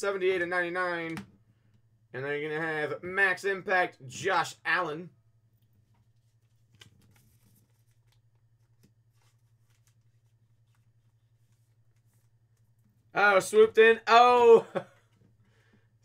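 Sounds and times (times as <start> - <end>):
card and plastic sleeve rustling: 5.7 - 13.1.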